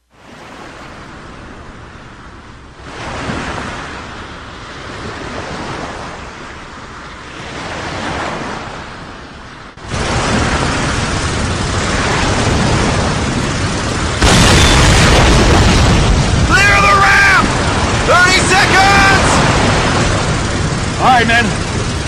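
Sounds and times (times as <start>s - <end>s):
boat engine rumble: 0.0s - 22.0s
sea and wind noise: 0.0s - 22.0s.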